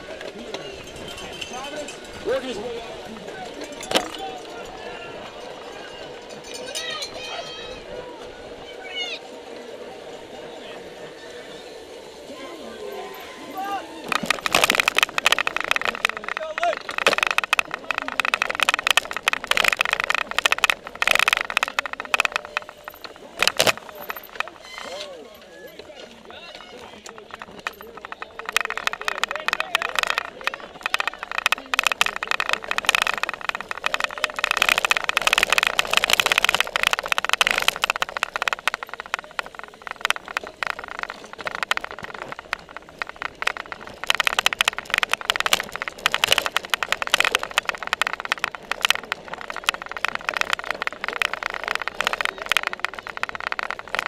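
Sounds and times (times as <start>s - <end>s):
bike rattling over bumpy grass: 0.0s - 8.7s, 12.9s - 54.0s
indistinct voices: 0.0s - 54.0s.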